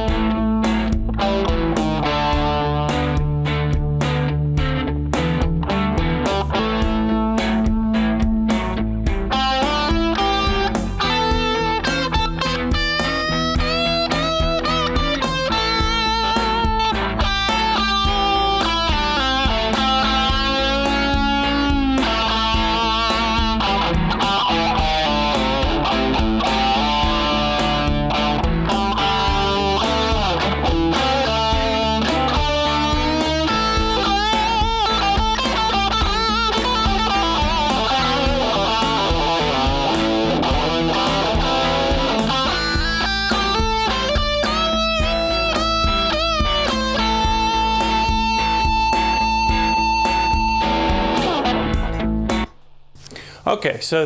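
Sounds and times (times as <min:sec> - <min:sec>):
electric guitar solo: 0:00.0 - 0:53.3
looped chord backing: 0:00.0 - 0:53.6.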